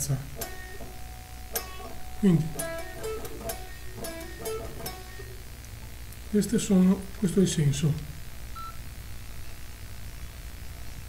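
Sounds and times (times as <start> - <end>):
electric guitar notes ringing: 0.0 - 5.5.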